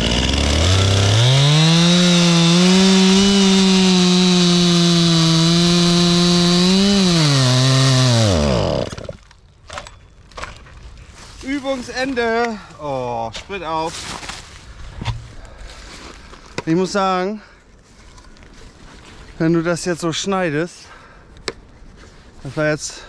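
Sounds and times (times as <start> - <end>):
chainsaw cutting through log: 0.0 - 9.3.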